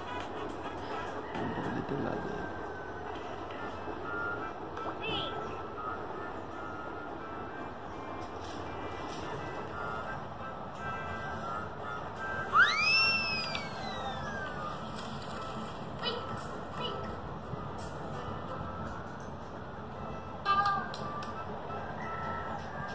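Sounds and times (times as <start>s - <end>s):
low music from tablet speaker: 0.0s - 22.9s
voices from tablet speaker: 4.4s - 6.2s, 16.0s - 17.2s
whistle-like tone sliding in pitch: 12.5s - 14.8s.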